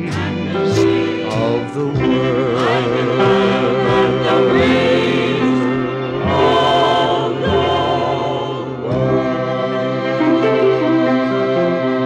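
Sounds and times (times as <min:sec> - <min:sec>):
choir holding wavering notes: 0:00.0 - 0:12.0.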